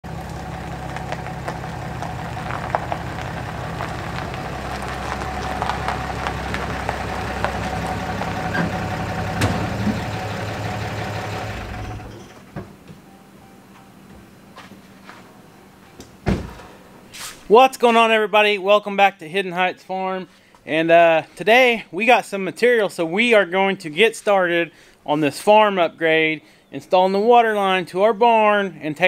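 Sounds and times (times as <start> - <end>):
truck engine running: 0.0 - 12.8.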